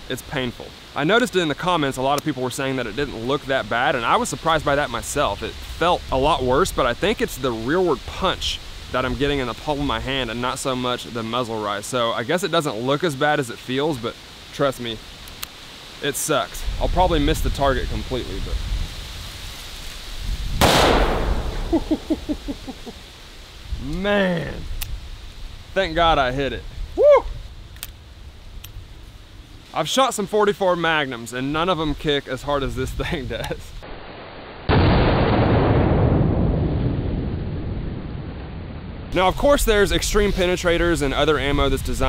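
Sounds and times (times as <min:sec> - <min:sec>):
revolver gunshot: 0:20.6 - 0:21.8.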